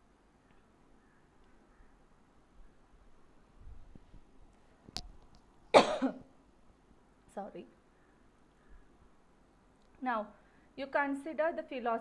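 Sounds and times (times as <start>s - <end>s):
woman coughing: 5.7s - 6.3s.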